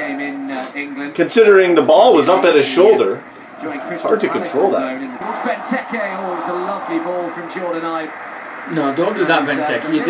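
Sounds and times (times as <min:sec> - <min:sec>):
man talking: 0:00.0 - 0:08.1.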